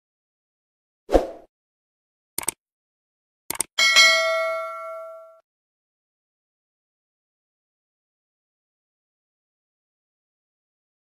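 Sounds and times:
notification bell ding: 3.8s - 5.4s.

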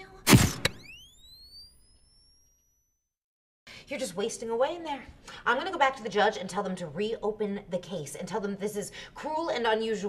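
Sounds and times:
sharp hit: 0.3s - 1.1s
upward gliding whistle tone: 0.7s - 2.9s.

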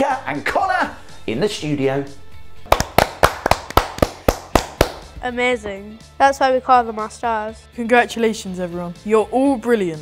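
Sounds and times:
hands clapping in even rhythm: 2.6s - 5.2s.

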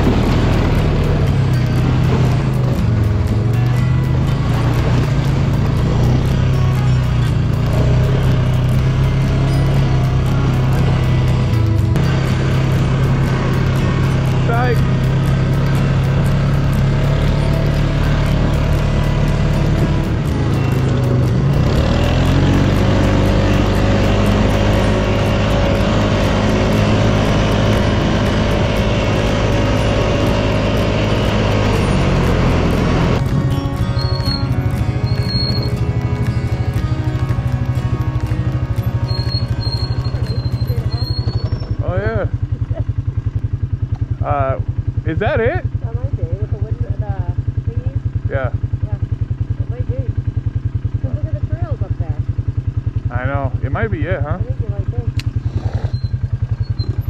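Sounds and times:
atv engine running: 0.0s - 57.0s.

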